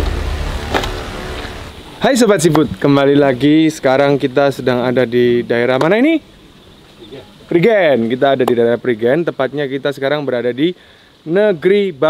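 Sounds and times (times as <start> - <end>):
deep low rumble: 0.0 - 1.9.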